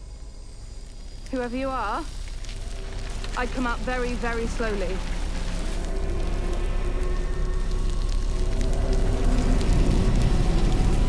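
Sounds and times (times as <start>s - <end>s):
film score tones: 0.0s - 11.0s
crackling with clicks: 0.6s - 11.0s.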